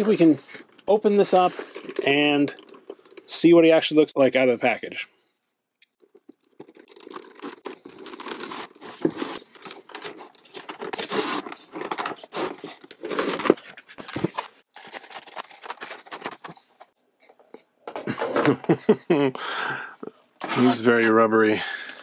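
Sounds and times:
packaging rustling and crinkling: 0.0s - 3.3s, 6.0s - 17.0s.

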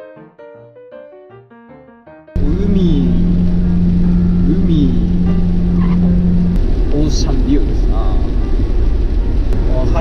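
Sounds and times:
car driving on wet road: 2.4s - 10.0s.

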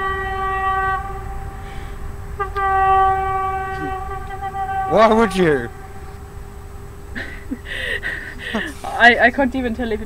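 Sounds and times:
distant vehicle horn blasts: 0.0s - 6.7s.

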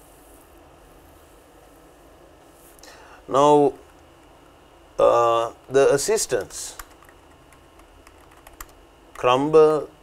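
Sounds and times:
keyboard typing clicks: 5.6s - 9.3s.

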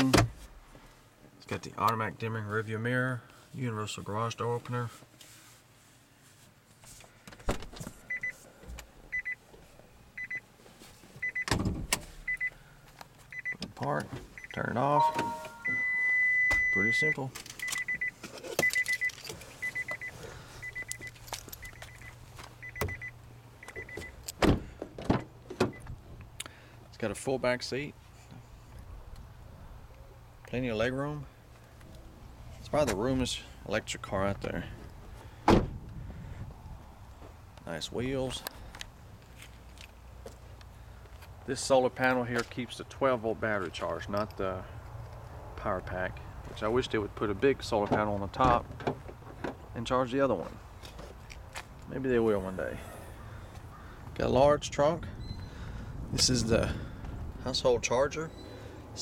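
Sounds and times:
quick high warning beeps: 8.1s - 8.4s, 11.2s - 11.5s, 14.4s - 24.1s
car door slamming: 11.4s - 12.1s, 24.4s - 25.8s, 35.4s - 35.8s.

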